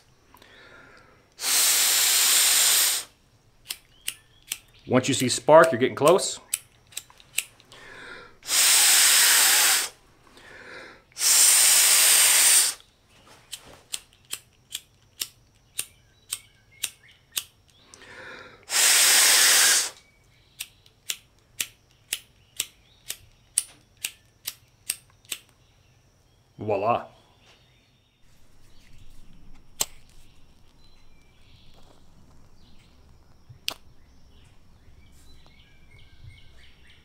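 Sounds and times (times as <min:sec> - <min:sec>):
hard breaths blowing: 0:00.0 - 0:03.2, 0:07.6 - 0:12.9, 0:17.7 - 0:20.1
lighter spark wheel clicks: 0:02.9 - 0:07.7, 0:13.9 - 0:17.9, 0:19.8 - 0:25.6, 0:29.8 - 0:30.1.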